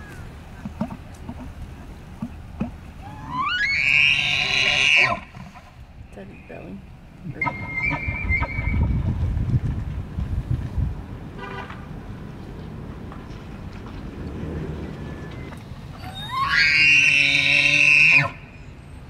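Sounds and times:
elk bugling: 2.2 - 6.6, 7.2 - 9.1, 14.8 - 18.5.

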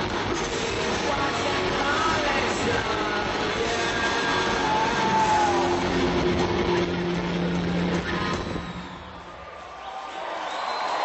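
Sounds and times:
rock band with distorted guitars: 0.0 - 9.3.

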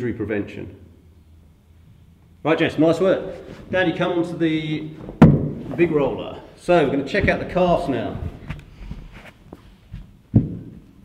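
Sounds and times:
thud on padded mat: 5.1 - 5.7.

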